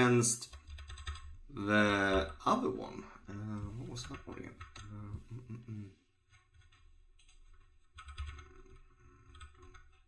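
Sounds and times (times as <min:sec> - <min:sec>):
faint keyboard typing: 0:00.3 - 0:10.0.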